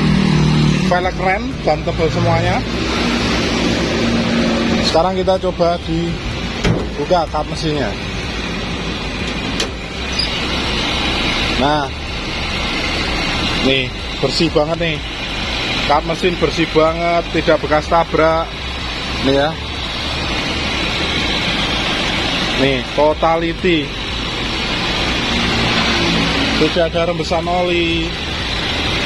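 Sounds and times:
car engine idling: 0.0 - 29.0.

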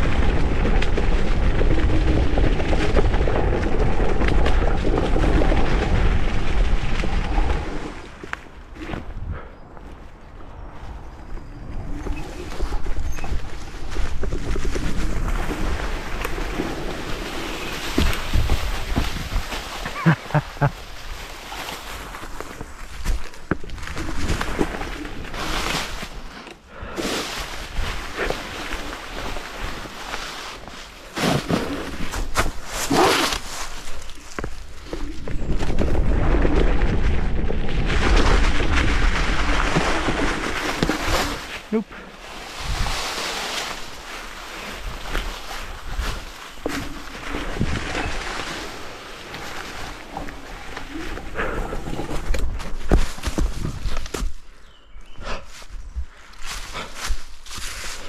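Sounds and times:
scooter rattling: 0.0 - 8.9, 11.8 - 54.1
wind rushing on microphone: 0.0 - 21.2, 42.2 - 54.1
leaves rustling under tyres: 0.0 - 58.0.

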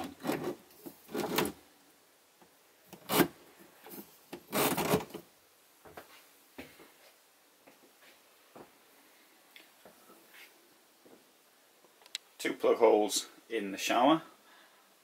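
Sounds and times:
faint clicks: 11.9 - 12.3.

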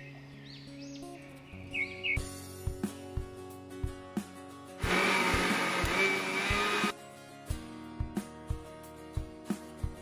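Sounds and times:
mixer-grinder motor whining: 4.8 - 6.9.

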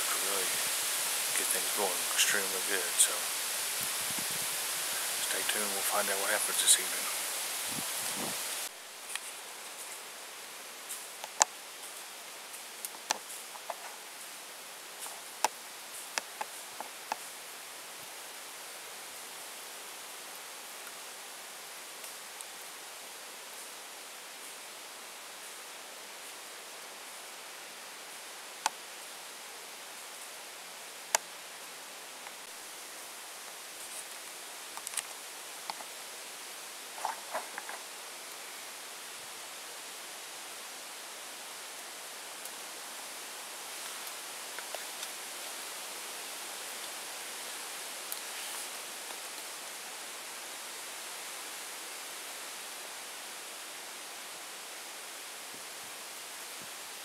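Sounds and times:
wind through tree leaves: 0.0 - 57.0.

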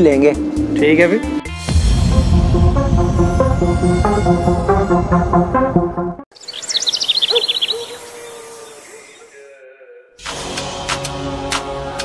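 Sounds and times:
bird chirping: 6.3 - 9.4
soft outdoor hiss: 6.4 - 9.3.

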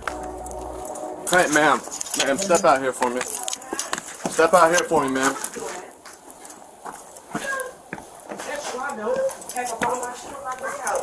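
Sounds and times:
indistinct voices: 0.0 - 6.0.

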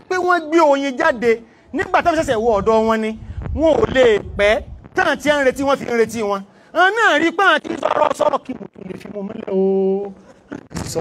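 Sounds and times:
man preaching into microphone: 0.0 - 11.0.

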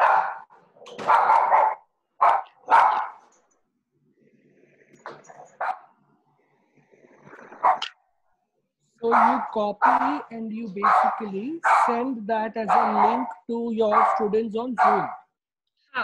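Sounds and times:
dog barking: 0.0 - 3.3, 5.3 - 5.9, 7.6 - 7.9, 9.0 - 15.3.

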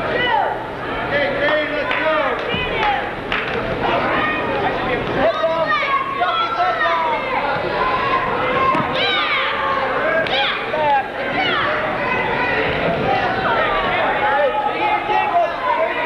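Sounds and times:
crowd chatter: 0.0 - 16.0
people shouting: 5.2 - 16.0.

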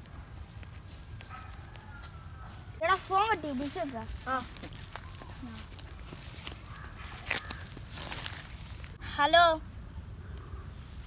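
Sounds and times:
footsteps on dry leaves: 0.4 - 9.0.

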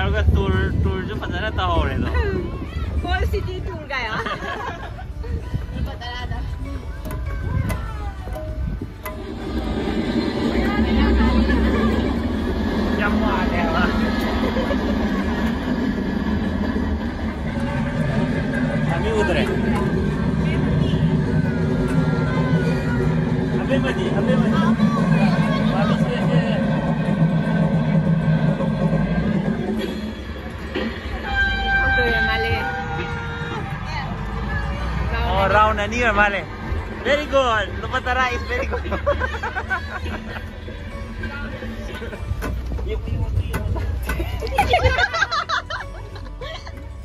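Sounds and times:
train carriage rumbling: 0.0 - 47.0
music playing: 1.7 - 47.0
train horn tone: 31.2 - 33.8.

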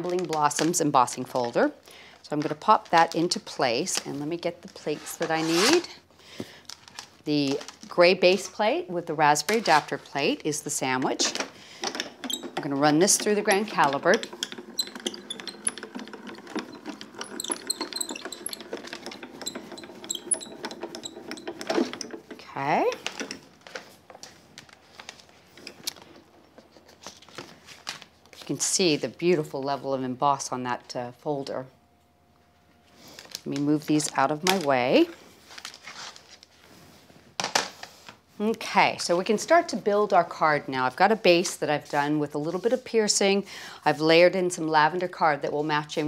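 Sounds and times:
hand-cranked machine rollers turning: 9.4 - 23.5.

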